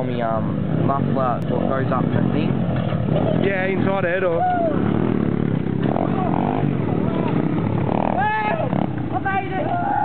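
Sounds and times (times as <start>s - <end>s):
dirt bike engines revving: 0.0s - 10.0s.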